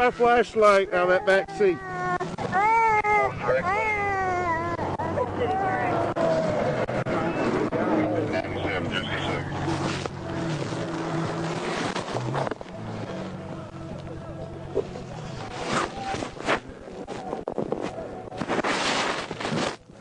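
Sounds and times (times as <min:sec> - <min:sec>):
vehicles passing: 0:00.0 - 0:18.4
highway traffic hum: 0:00.0 - 0:20.0.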